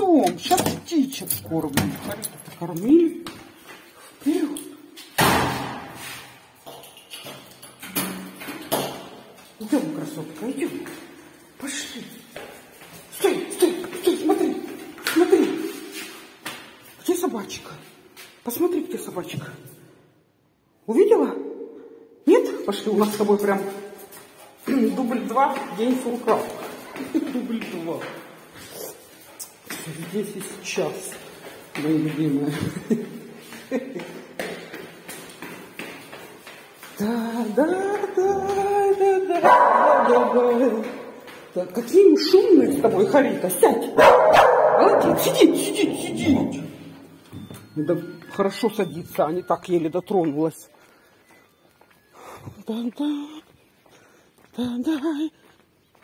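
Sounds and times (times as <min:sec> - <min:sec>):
footsteps on tile floor: 0:00.0 - 0:20.6, 0:22.3 - 0:56.0
echoing door slam: 0:05.2 - 0:06.0.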